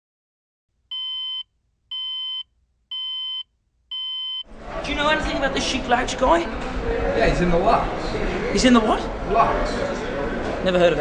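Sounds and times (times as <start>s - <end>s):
electronic warning beeps: 0.9s - 4.4s.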